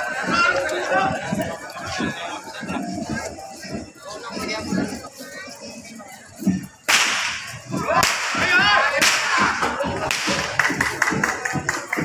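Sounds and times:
voices: 0:00.0 - 0:12.0
whip cracking: 0:06.9 - 0:11.4.

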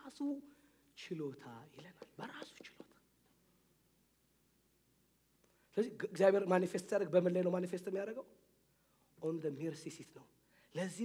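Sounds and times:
man speaking softly: 0:00.0 - 0:03.0.

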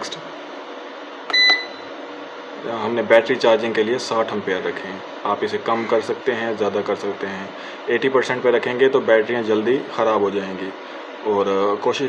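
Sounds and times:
button clicks: 0:01.3 - 0:01.8
short high beep: 0:01.3 - 0:01.9.

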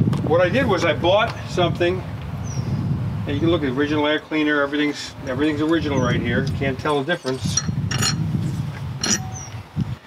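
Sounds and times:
metal clink: 0:07.2 - 0:08.2, 0:09.0 - 0:09.4
steady low rumble: 0:07.4 - 0:10.0.

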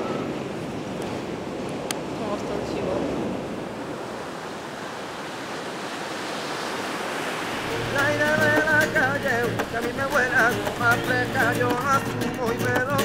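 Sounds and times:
waves washing onto beach: 0:00.0 - 0:13.0
wind: 0:00.0 - 0:13.0
music with guitar and voice: 0:07.6 - 0:13.0.

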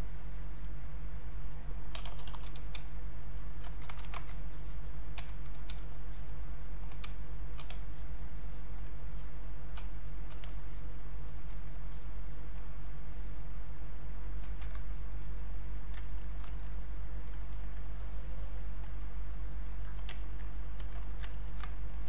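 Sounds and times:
low electrical hum: 0:00.0 - 0:22.0
keyboard and mouse clicking: 0:01.9 - 0:02.9, 0:03.6 - 0:11.6, 0:14.4 - 0:14.9, 0:15.9 - 0:17.8, 0:19.8 - 0:22.0.

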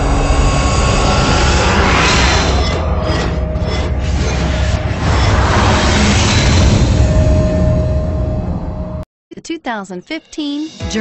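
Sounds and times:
rushing whoosh and rumble: 0:00.0 - 0:09.0.

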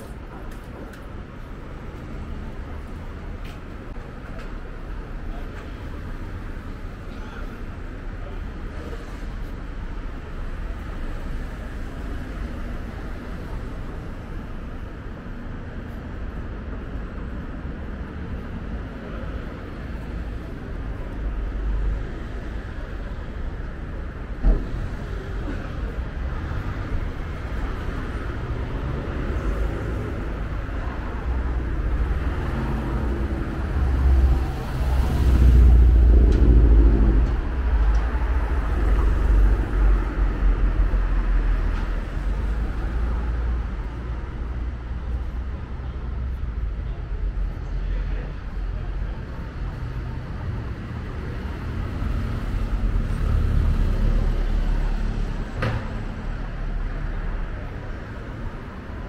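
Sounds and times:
motor vehicles passing: 0:24.6 - 0:44.3.

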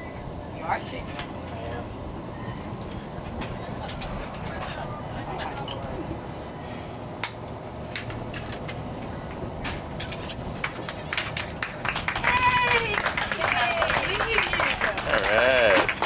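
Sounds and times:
boat engine rumble: 0:00.0 - 0:16.0
sharp claps or clicks: 0:10.6 - 0:16.0
people squealing and cheering: 0:11.6 - 0:16.0.

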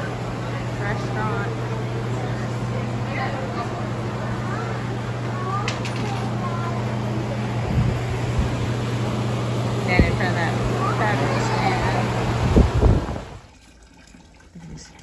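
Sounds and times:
dishes clattering: 0:05.6 - 0:06.4.

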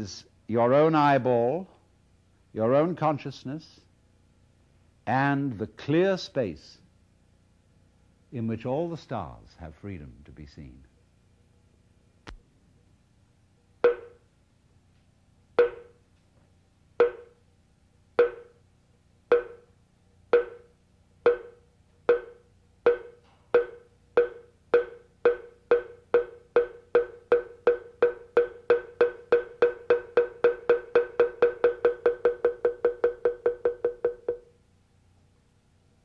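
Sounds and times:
pitched percussion strokes: 0:21.3 - 0:34.5.

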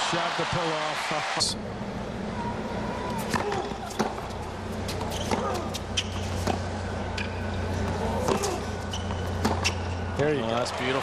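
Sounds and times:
stadium crowd hum: 0:00.0 - 0:11.0
tennis ball struck by rackets: 0:03.2 - 0:04.3, 0:07.2 - 0:09.8.

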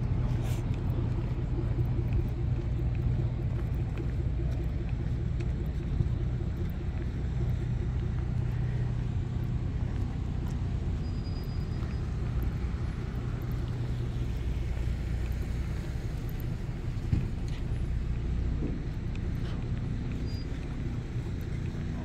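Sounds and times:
engine running steadily: 0:00.0 - 0:22.0.

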